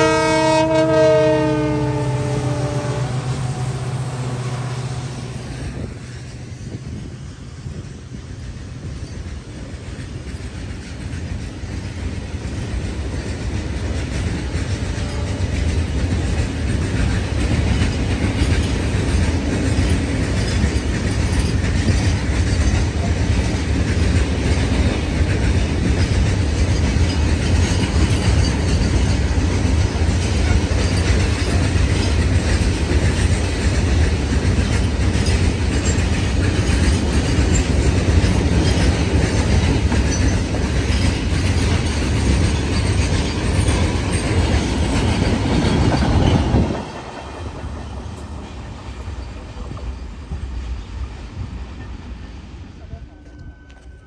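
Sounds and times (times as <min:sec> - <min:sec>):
freight train wheels on rails: 0:00.0 - 0:54.0.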